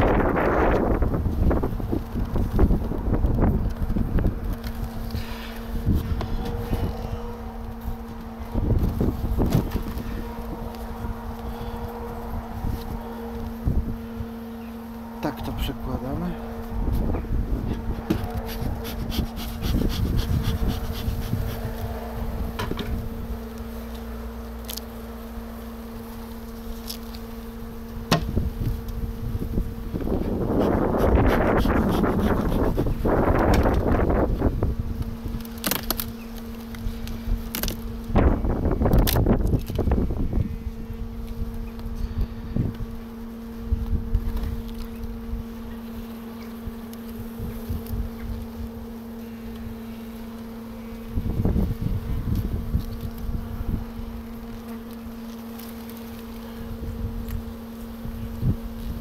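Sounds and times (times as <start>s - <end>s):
honeybee colony humming: 0.0s - 59.0s
clicks and knocks of hive frames: 28.0s - 28.4s, 35.0s - 39.9s.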